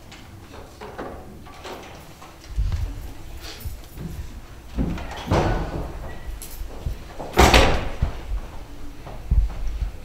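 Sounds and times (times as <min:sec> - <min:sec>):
door thudding: 0:04.8 - 0:08.4.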